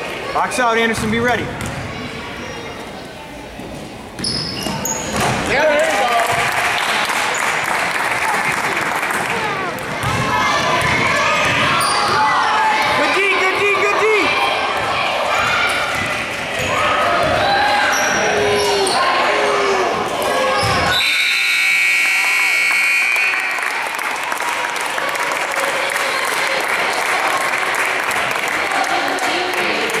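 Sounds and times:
basketball bouncing: 0.9s - 2.0s, 9.7s - 13.8s, 14.7s - 17.5s
spectators shouting: 8.2s - 22.5s.

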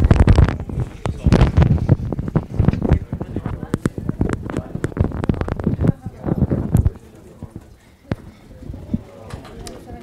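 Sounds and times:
microphone handling knocks and rubs: 0.0s - 7.0s.

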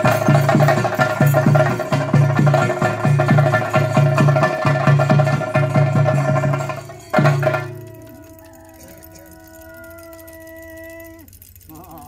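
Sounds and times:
wavering vibrato note: 5.1s - 11.3s.

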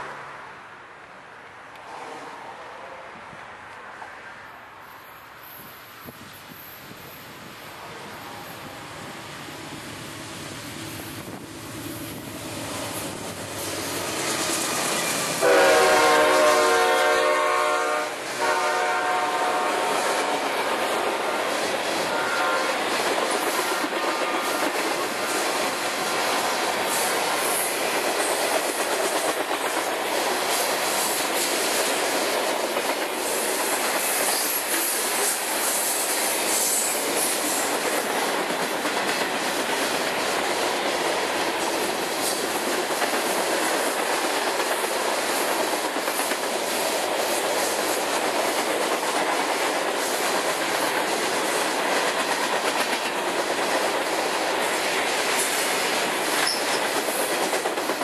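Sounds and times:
steel wheels rolling on rails: 20.0s - 58.0s.

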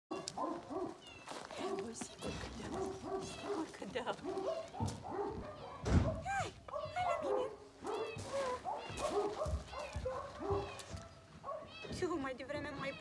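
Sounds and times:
woman speaking: 1.5s - 4.6s, 6.2s - 7.6s, 11.9s - 13.0s.

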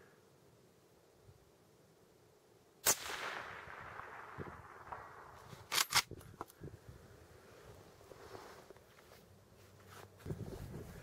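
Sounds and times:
rifle shot with echo: 2.8s - 6.1s.

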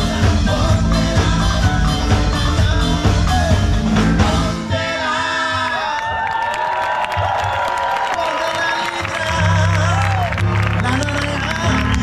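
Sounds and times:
live funk band: 0.0s - 5.8s
crowd cheering and whooping: 5.5s - 12.0s.

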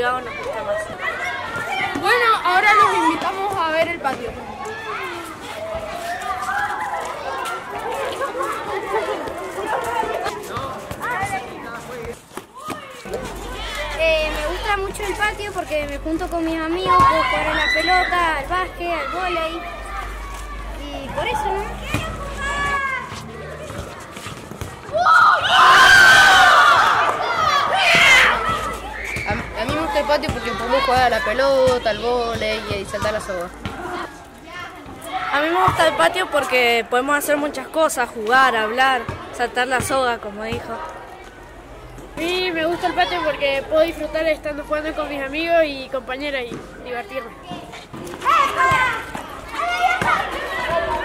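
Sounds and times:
children shouting and cheering: 0.0s - 11.7s, 12.5s - 36.5s, 47.1s - 51.0s.

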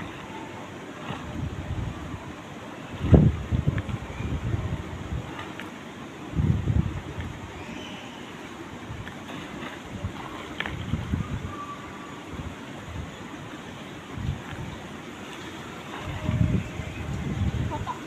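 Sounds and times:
wind buffeting microphone: 1.0s - 5.6s, 6.2s - 7.6s, 8.7s - 18.0s.

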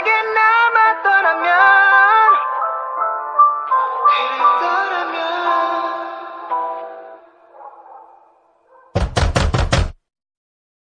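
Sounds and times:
loud knocks: 8.9s - 10.0s.

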